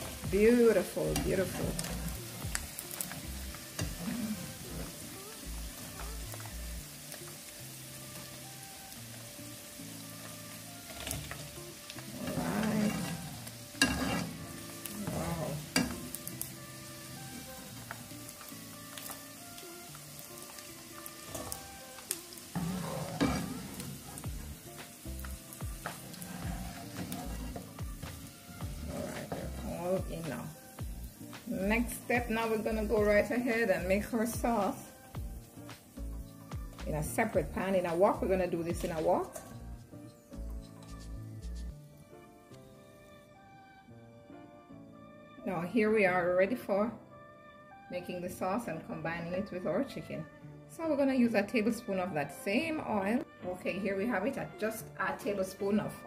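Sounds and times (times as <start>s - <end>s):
chicken sizzling in hot oil: 0.0s - 42.1s.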